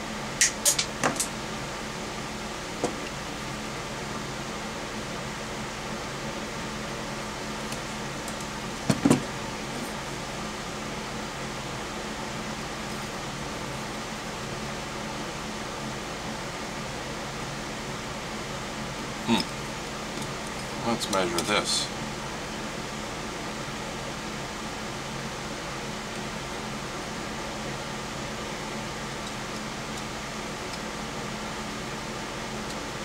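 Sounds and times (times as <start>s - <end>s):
fan hum: 0.0s - 33.0s.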